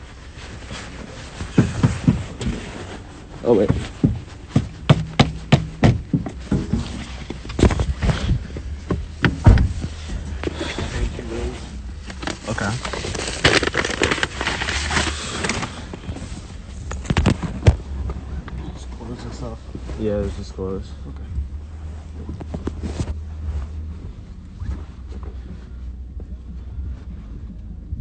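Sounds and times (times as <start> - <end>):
clothing rubbing over microphone: 0.0 - 28.0.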